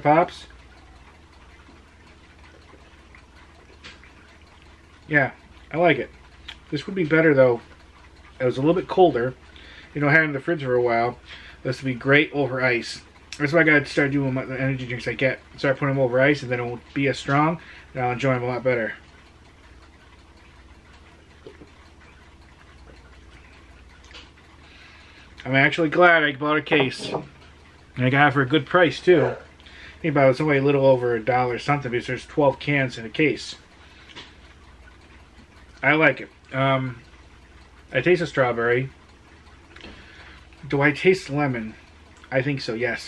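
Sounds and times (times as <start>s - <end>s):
mouth and glass sounds: 26.7s - 27.3s.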